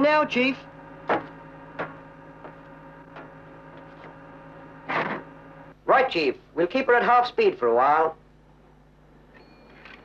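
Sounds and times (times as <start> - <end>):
engine room machinery hum: 0.0 - 10.0.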